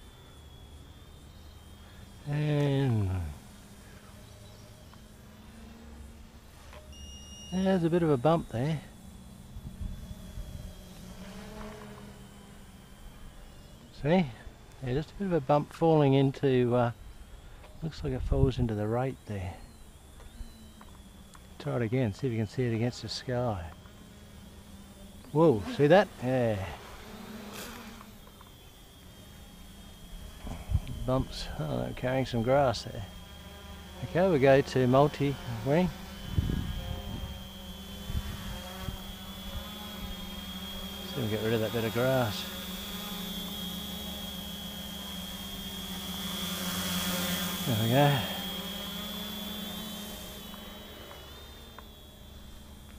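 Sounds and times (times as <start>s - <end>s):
model airplane motor drone: 0.0s - 52.9s.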